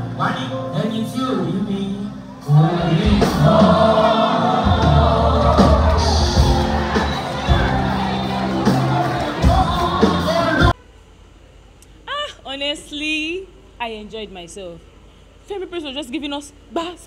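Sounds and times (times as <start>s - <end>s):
gospel choir with band: 0.0s - 10.8s.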